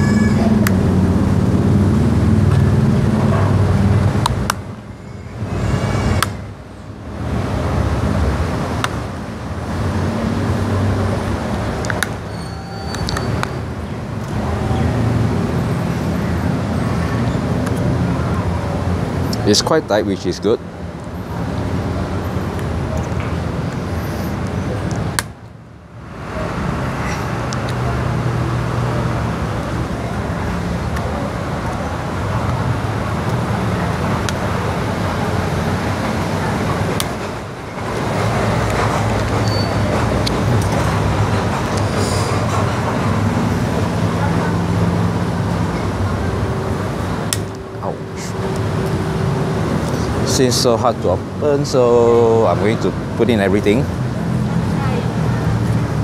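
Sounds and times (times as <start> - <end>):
road traffic: 0.0 - 56.0
vehicle engines humming: 0.0 - 56.0.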